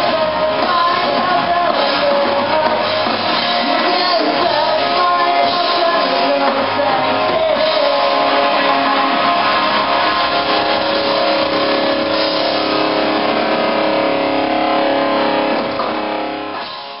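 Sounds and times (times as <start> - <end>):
electric guitar and bass chord: 0.0 - 17.0.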